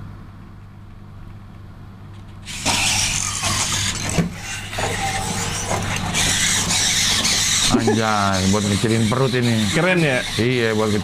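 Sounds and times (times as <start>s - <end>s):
robot toy servos whirring: 2.4s - 11.0s.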